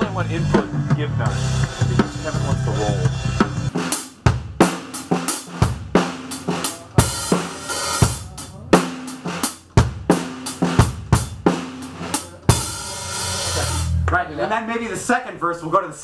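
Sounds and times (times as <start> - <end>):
drum kit rock pattern: 0.0 - 14.3
cymbal crash: 11.6 - 14.0.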